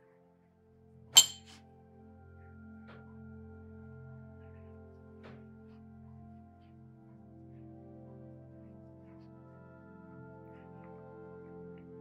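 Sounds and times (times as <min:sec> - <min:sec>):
soft background music: 0:00.0 - 0:12.0
sharp clink with high ring: 0:01.2 - 0:01.6.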